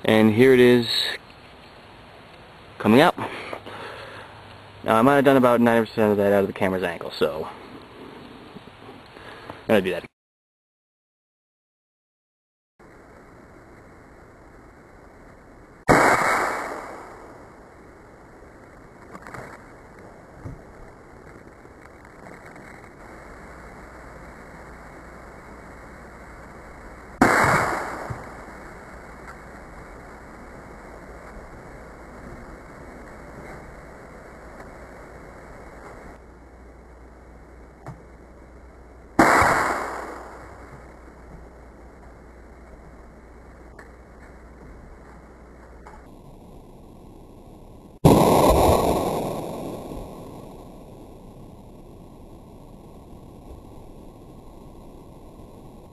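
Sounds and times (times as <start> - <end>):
pellet gun shots: 15.9 - 17.2, 27.2 - 28.4, 39.2 - 40.6.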